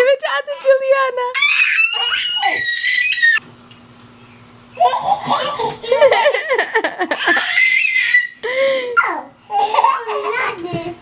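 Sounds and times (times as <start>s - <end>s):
babies laughing: 1.4s - 3.4s, 4.8s - 10.6s.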